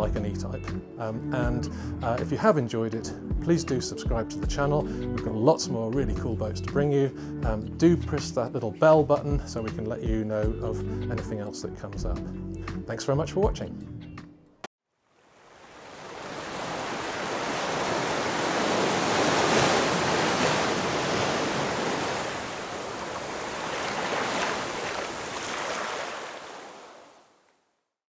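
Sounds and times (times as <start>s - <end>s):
waves washing: 15.2s - 27.3s.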